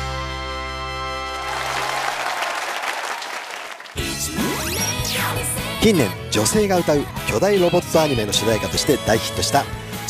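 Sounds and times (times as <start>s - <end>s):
audience applauding: 1.2s - 4.0s.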